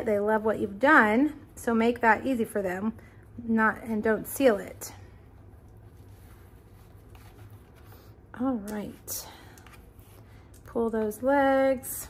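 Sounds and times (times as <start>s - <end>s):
low steady hum: 0.0s - 12.0s
ribbon rustling against paper box: 5.6s - 9.0s.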